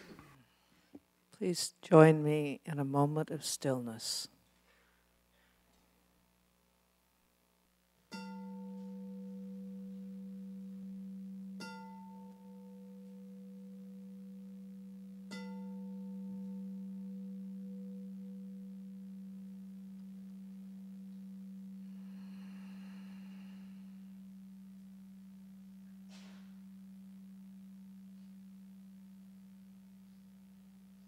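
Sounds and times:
singing bowl ringing: 0:08.1 - 0:30.8.

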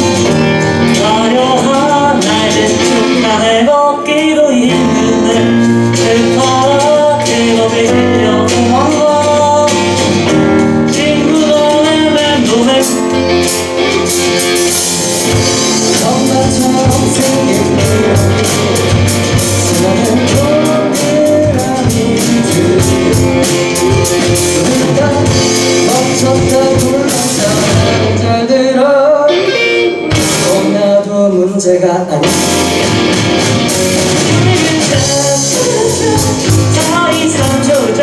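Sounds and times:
man singing: 0:00.0 - 0:32.8, 0:33.7 - 0:38.0
acoustic guitars playing: 0:00.0 - 0:38.0
drum cymbals: 0:08.5 - 0:28.2, 0:32.2 - 0:38.0.

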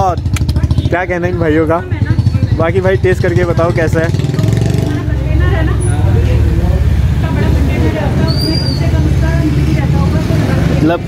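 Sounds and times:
road traffic rumble: 0:00.0 - 0:11.0.

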